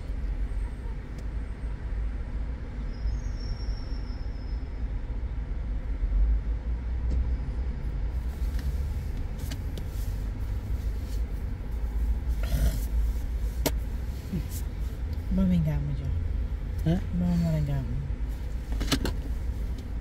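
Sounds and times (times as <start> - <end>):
car idling from inside cabin: 8.1 - 20.0.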